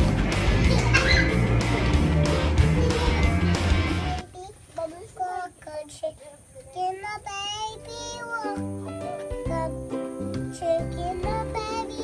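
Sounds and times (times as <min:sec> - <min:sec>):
backing music with low bass: 0:00.0 - 0:04.2
child singing: 0:02.5 - 0:03.4, 0:04.0 - 0:12.0.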